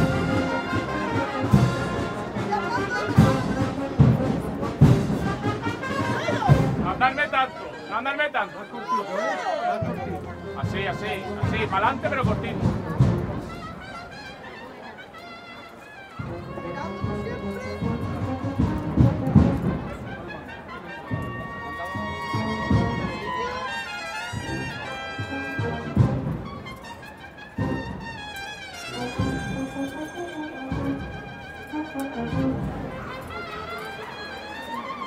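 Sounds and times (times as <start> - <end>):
drum beats: 0.0 - 7.6, 9.8 - 14.2, 16.2 - 20.4, 21.1 - 23.5, 24.3 - 33.6
held brass notes: 0.0 - 35.0.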